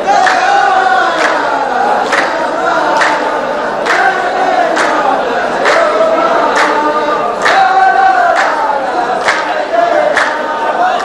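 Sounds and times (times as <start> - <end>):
group handclap: 0.0 - 11.0
men chanting in unison: 0.0 - 11.0.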